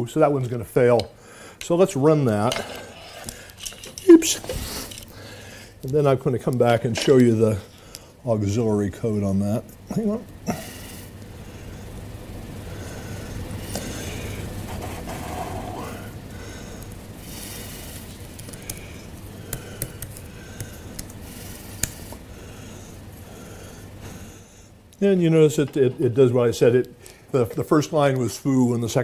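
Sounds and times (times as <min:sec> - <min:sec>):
room noise: 0:00.0 - 0:29.0
laptop keyboard typing: 0:18.3 - 0:22.0.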